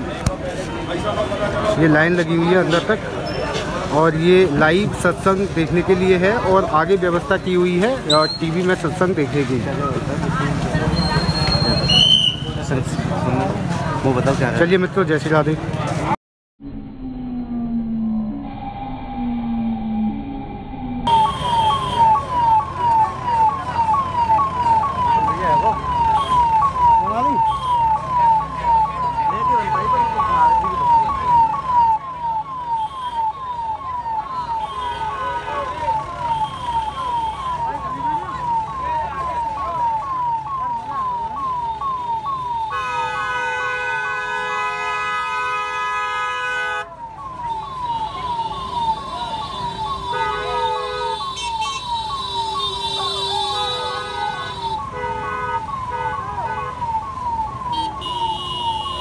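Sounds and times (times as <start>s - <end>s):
steady held tone: 16.6s - 21.8s
electronic siren sweeping down: 16.6s - 42.8s, 46.8s - 59.0s.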